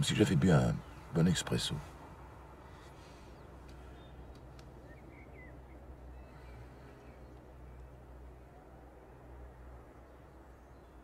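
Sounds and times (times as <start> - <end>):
faint clicks: 3.6 - 4.8, 7.0 - 8.0.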